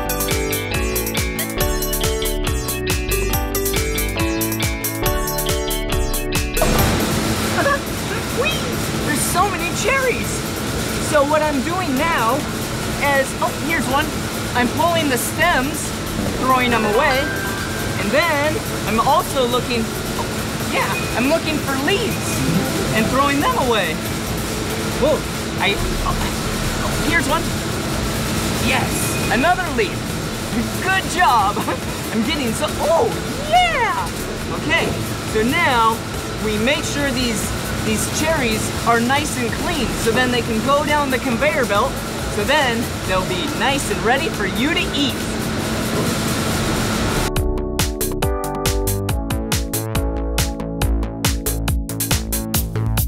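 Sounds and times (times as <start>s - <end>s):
background music: 0.0s - 28.1s
conveyor machinery hum: 0.0s - 47.4s.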